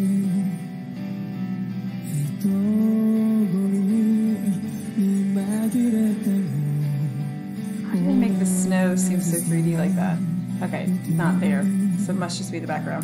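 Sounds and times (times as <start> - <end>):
man singing a slow ballad: 0.0 - 1.1, 2.0 - 12.3
guitar accompaniment: 0.0 - 13.0.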